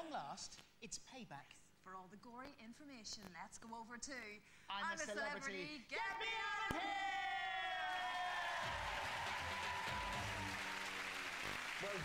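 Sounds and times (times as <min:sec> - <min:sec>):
studio audience cheering and applauding: 0:06.8 - 0:12.0.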